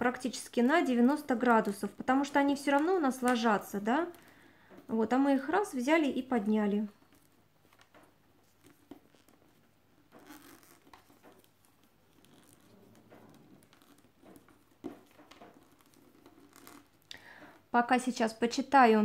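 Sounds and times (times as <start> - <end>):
rustling paper tubes: 6.7 - 17.7.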